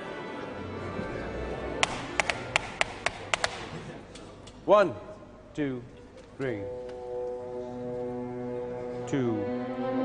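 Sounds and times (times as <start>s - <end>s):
sharp taps: 1.8s - 3.7s.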